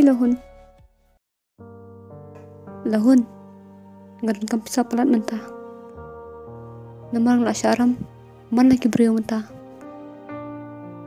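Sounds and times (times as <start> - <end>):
soft music with held chords: 0.0 - 11.0.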